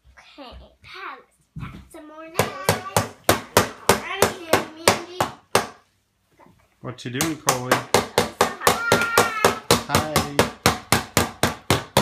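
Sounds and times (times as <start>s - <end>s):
toy tool knocking on wood: 7.2s - 12.0s.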